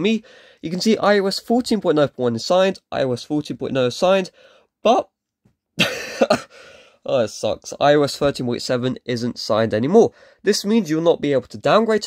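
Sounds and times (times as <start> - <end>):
man's breathy laugh: 5.8 - 6.9.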